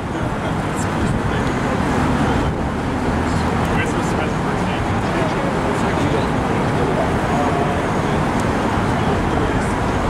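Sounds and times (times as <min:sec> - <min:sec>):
city street traffic: 0:00.0 - 0:10.0
faint voices: 0:00.0 - 0:10.0.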